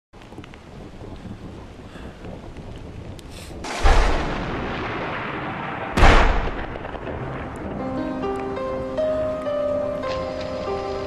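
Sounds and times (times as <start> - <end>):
deep rumbling boom: 0.7 - 8.3
sharp boom: 3.6 - 8.0.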